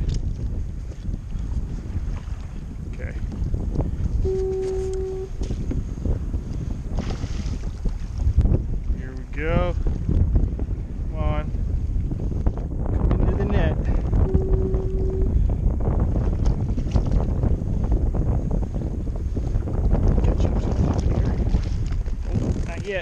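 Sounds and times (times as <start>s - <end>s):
choppy water: 0.0s - 23.0s
wind buffeting microphone: 0.0s - 23.0s
steady tone: 4.2s - 5.4s, 13.3s - 15.5s.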